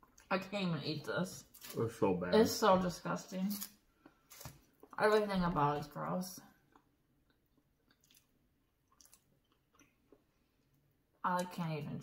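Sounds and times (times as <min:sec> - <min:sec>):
person chewing food: 0:06.6 - 0:11.2.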